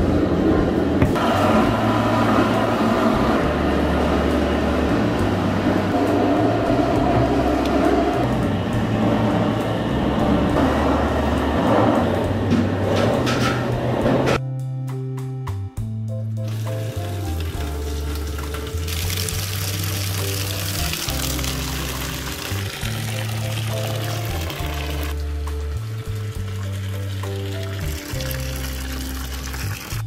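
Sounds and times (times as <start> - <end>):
slow melodic background music: 0.6 - 30.0
milk pouring into metal pot: 16.5 - 25.2, 25.9 - 30.0.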